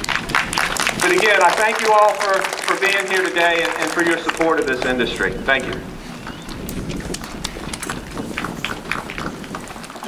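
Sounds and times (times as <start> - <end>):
audience applauding: 0.0 - 10.0.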